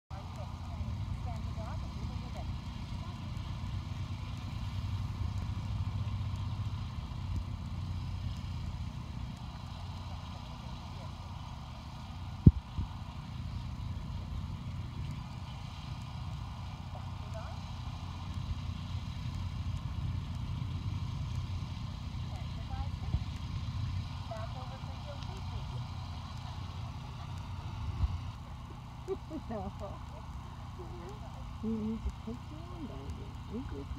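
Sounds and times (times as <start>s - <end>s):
distant voices: 0.1s - 33.9s
low outdoor rumble: 0.1s - 33.9s.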